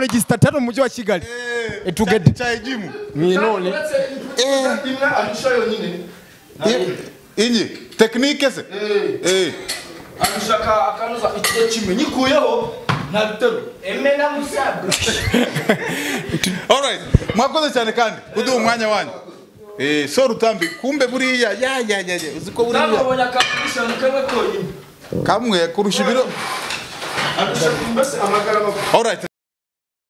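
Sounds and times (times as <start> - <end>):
man talking: 0.0 - 26.4.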